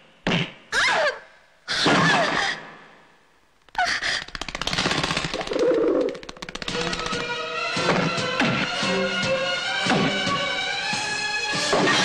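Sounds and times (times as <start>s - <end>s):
fast rattling sharp clicks: 3.6s - 7.4s.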